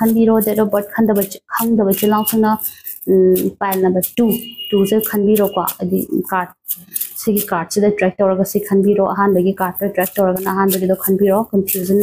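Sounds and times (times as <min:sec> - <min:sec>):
woman speaking: 0:00.0 - 0:12.0.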